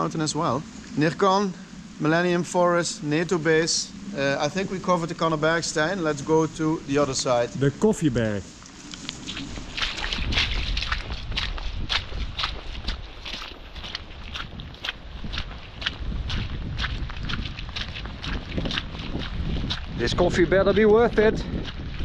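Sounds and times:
wind rumbling on microphone: 0.0s - 22.0s
footsteps on muddy path: 8.5s - 22.0s.

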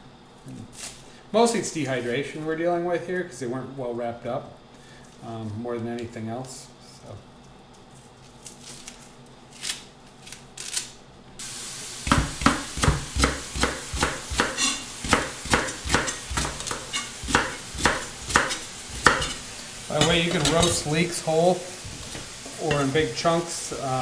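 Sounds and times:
knife chopping on plastic board: 12.0s - 19.4s.

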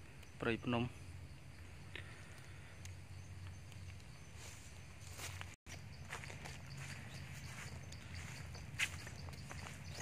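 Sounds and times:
footsteps crunching on dry leaves: 4.3s - 10.0s.

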